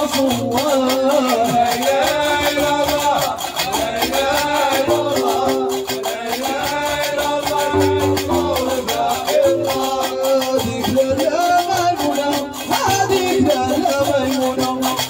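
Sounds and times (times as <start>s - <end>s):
chanted singing: 0.0s - 15.0s
plucked bass lute notes: 0.0s - 15.0s.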